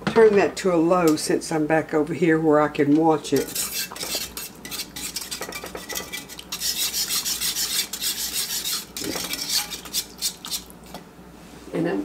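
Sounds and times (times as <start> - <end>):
metal spoon stirring thick puree: 3.3 - 10.8.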